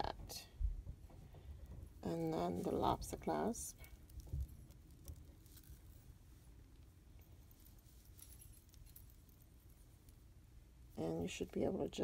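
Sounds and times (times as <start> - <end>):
metal chain clinking: 3.7 - 10.3.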